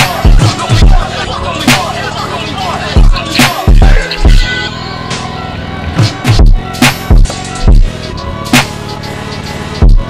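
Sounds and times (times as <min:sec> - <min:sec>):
hip hop beat with heavy bass: 0:00.0 - 0:10.0
voice-like sample: 0:00.4 - 0:05.0.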